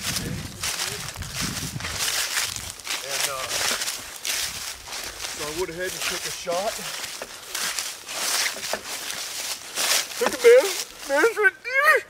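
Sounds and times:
footsteps crunching through dry leaves: 0.0 - 11.4.

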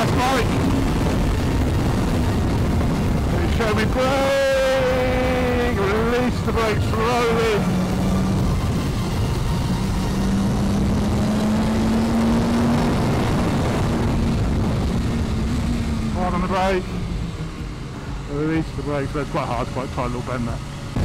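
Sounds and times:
rider's voice: 0.0 - 0.6, 3.3 - 7.8
wind rush: 0.0 - 19.1
motorcycle engine revving: 0.0 - 21.0.

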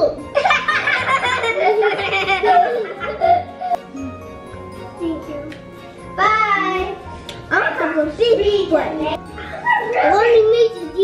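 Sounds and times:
background music: 0.0 - 11.0
young children talking: 6.2 - 11.0.

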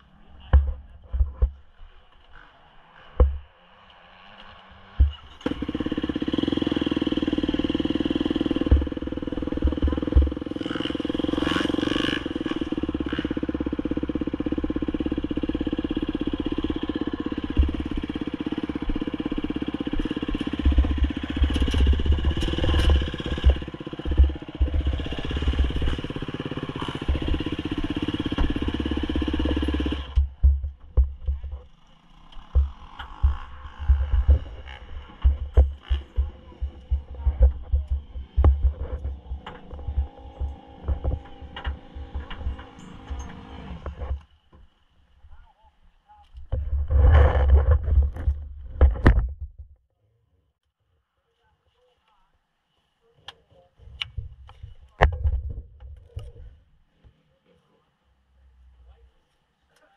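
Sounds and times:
engine running steadily: 0.0 - 44.6
handling knocks and thumps: 20.6 - 26.1, 29.4 - 31.7, 32.5 - 43.1.

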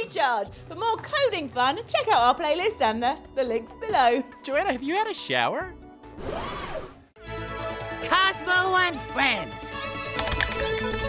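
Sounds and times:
theme music with held chords: 1.3 - 6.2, 7.2 - 11.0.

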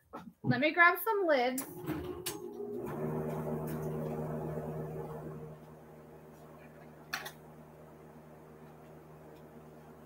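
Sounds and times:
low machine hum: 1.6 - 10.0.

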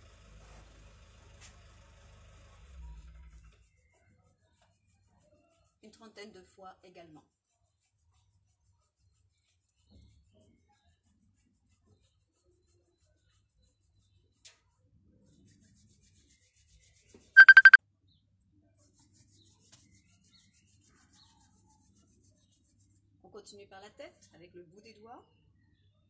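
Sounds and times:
rapid high beeps: 17.4 - 17.8.

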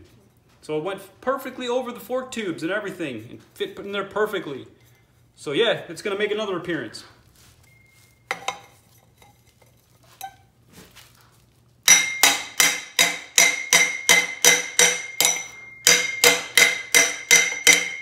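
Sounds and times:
ringing metallic knocks: 11.9 - 18.0.

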